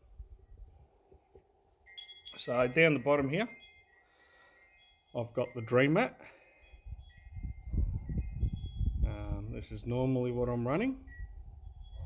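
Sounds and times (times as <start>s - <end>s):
faint high ringing tones: 1.7s - 9.1s, 10.7s - 12.0s.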